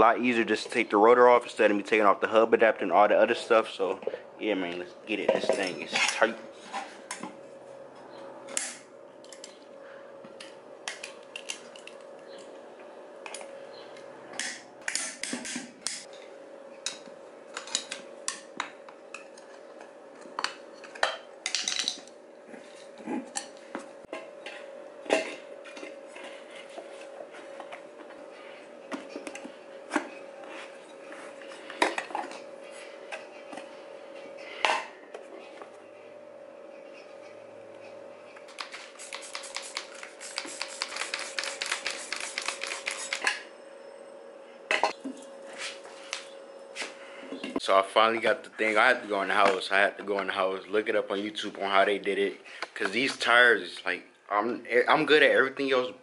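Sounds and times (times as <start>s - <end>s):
metal tools clinking and scraping: 5.3s - 6.9s.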